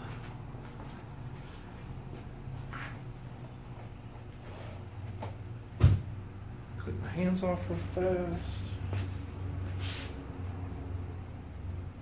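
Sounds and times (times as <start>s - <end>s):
low background hum: 0.0s - 12.0s
short sharp thump: 5.8s - 6.1s.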